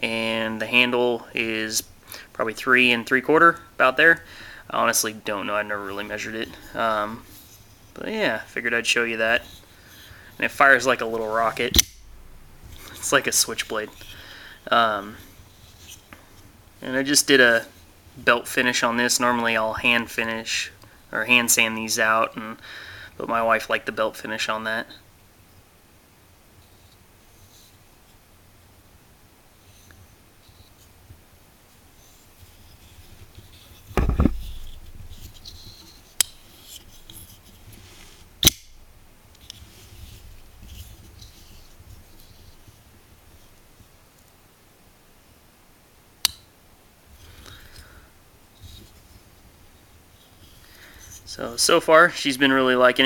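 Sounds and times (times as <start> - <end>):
dull thump: 34.0 - 35.1
knife blade clicking open: 38.4 - 38.7.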